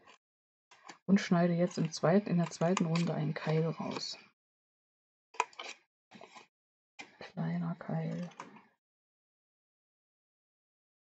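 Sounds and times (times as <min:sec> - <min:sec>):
scissors snipping cardstock: 0:01.7 - 0:04.0.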